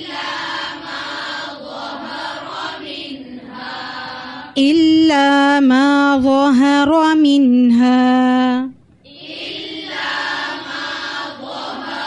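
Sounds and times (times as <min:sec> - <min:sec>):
melodic chanted recitation: 0:00.0 - 0:12.0.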